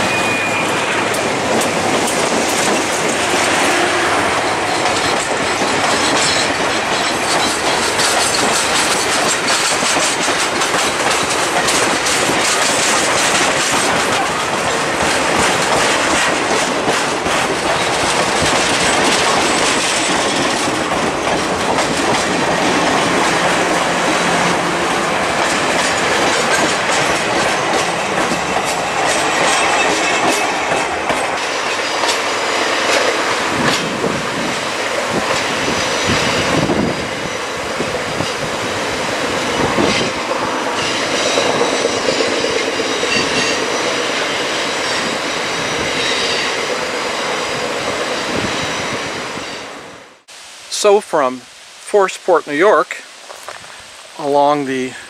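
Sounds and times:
train wheels rolling on track: 0:00.0 - 0:50.3
train wheels clicking over rail joints: 0:00.7 - 0:48.9.

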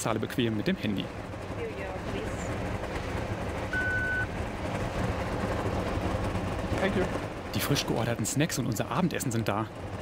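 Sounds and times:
train coach rumbling: 0:00.0 - 0:10.0
card terminal beep: 0:03.7 - 0:04.3.

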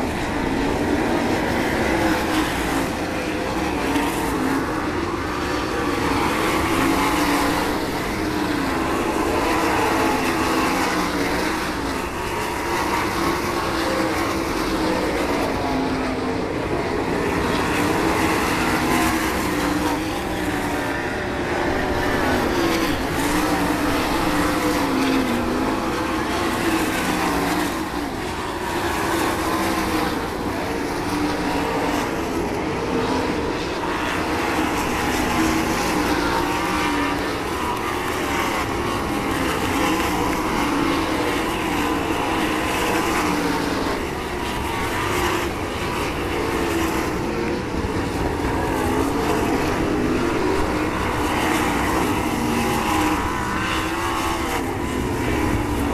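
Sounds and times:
race car engines howling: 0:00.0 - 0:55.9.

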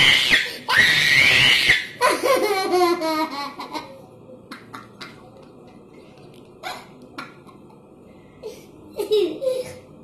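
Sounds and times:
room noise: 0:00.0 - 0:10.0
girl laughing: 0:02.0 - 0:04.0, 0:08.9 - 0:09.8.

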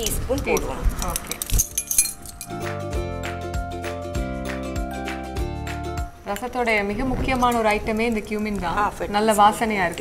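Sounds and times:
metal measuring spoons clinking: 0:00.3 - 0:02.7
background music with steady beat: 0:01.4 - 0:06.3.

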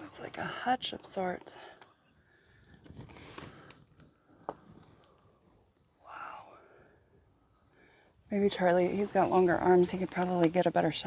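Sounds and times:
faint handling noise: 0:02.6 - 0:05.3.

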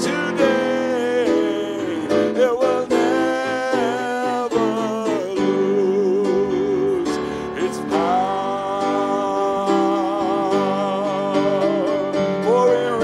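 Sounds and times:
voices singing long notes: 0:00.0 - 0:13.0.

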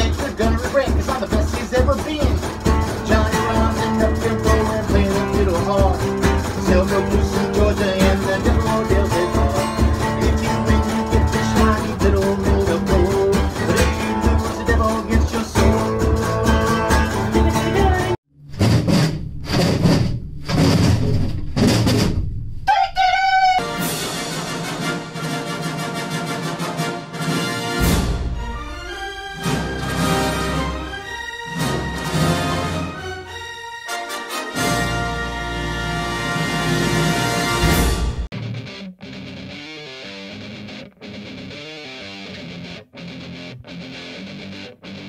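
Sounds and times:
acoustic guitar strumming: 0:00.0 - 0:22.0
broken sound: 0:18.3 - 0:25.0
orchestral fanfare: 0:23.1 - 0:38.3.

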